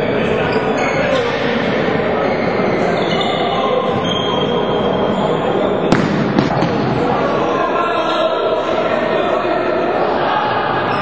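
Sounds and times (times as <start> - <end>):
echoing crowd voices: 0.0 - 11.0.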